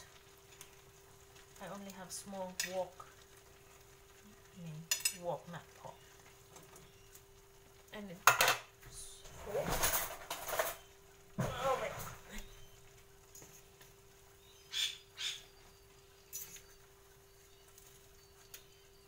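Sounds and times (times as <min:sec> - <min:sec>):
food rustling in a wok: 0:08.7 - 0:14.5, 0:15.5 - 0:19.0.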